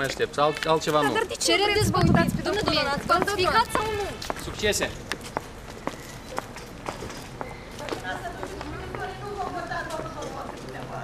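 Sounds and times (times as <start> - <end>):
footsteps on paved path: 0.0 - 11.0.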